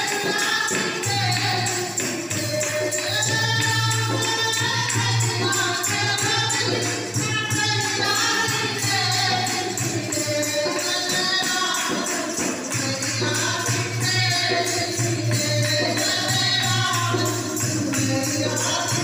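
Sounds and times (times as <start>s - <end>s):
jingling hand percussion: 0.0s - 19.0s
women singing in chorus: 0.0s - 19.0s.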